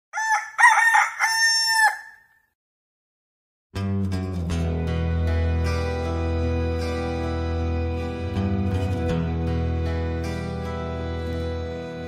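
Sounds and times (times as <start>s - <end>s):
rooster crowing: 0.1s - 2.4s.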